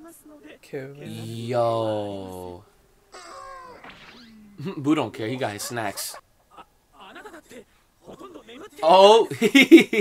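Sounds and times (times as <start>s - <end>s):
man exclaiming and laughing: 1.0s - 2.6s, 4.6s - 9.6s.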